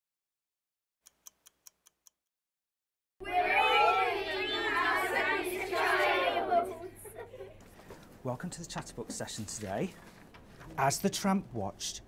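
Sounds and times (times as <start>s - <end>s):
children's voices overlapping: 3.2s - 7.2s.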